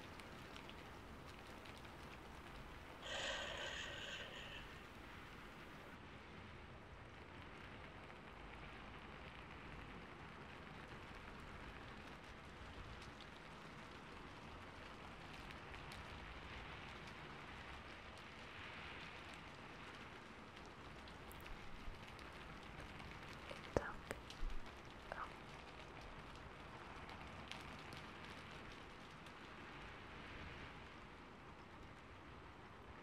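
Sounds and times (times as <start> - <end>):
faint ticks: 0.0 - 5.9, 12.0 - 29.9
faint steady hiss: 0.0 - 33.0.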